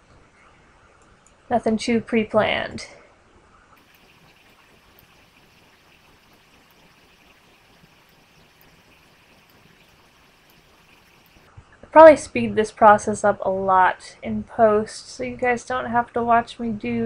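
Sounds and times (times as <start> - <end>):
faint room hiss: 0.0 - 17.0
faint ticks: 3.8 - 11.5.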